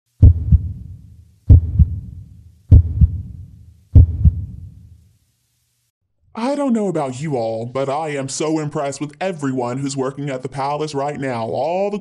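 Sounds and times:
heartbeat double thumps: 0.1s - 4.9s.

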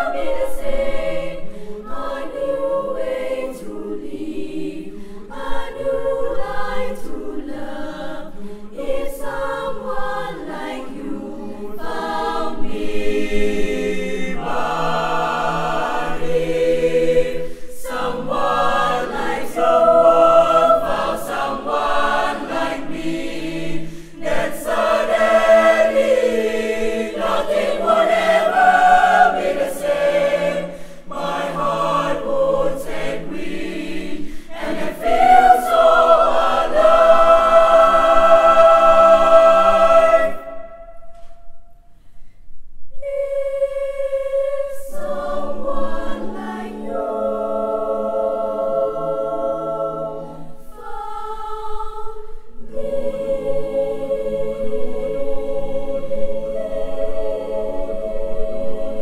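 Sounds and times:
children's choir singing in parts: 0.0s - 41.6s, 43.0s - 59.0s.

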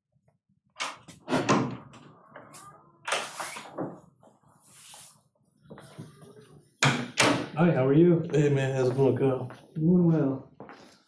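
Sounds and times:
door opening and closing: 0.8s - 4.1s.

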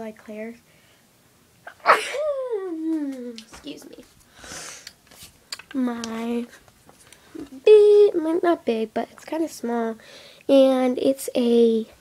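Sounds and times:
girl sneezing: 1.7s - 2.7s.

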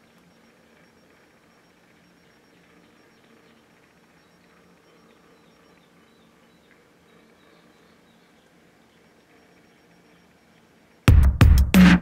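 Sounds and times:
low steady hum: 0.0s - 11.6s.

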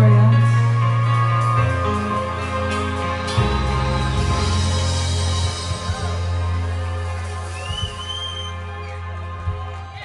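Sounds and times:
rock band sustained chord: 0.0s - 9.2s
high thin whistle: 7.6s - 8.6s.

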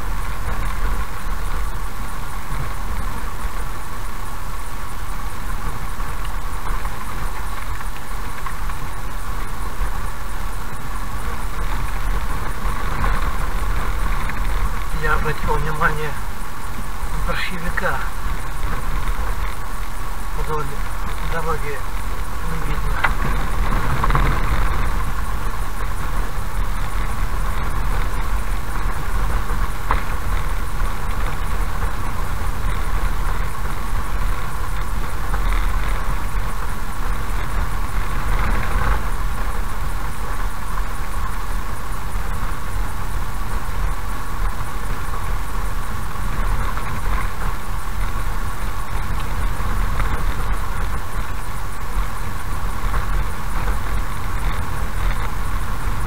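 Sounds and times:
car engine and tyres rumbling: 0.0s - 56.0s.

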